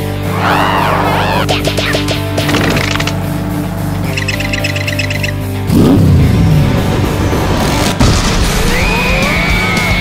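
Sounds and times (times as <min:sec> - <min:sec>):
cartoon music: 0:00.3 - 0:03.1
high ticks: 0:04.1 - 0:05.4.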